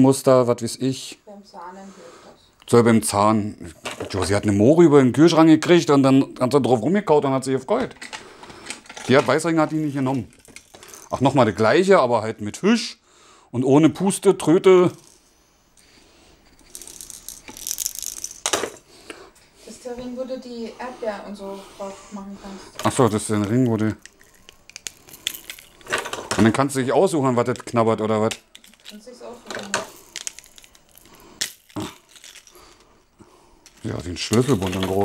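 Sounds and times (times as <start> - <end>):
plastic baby rattle shaken: 10.1 - 11.3, 16.6 - 18.8, 22.8 - 26.5, 28.5 - 32.6, 33.7 - 35.0.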